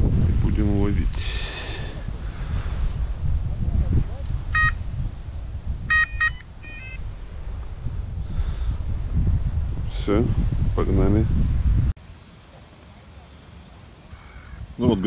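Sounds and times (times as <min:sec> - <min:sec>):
wind buffeting microphone: 0:00.0 - 0:12.0, 0:13.6 - 0:15.0
bite alarm short beeps: 0:04.6 - 0:04.8, 0:05.9 - 0:07.0.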